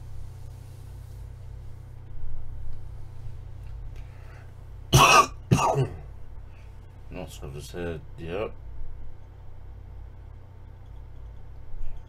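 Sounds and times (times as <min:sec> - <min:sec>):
man coughing: 0:04.9 - 0:06.1.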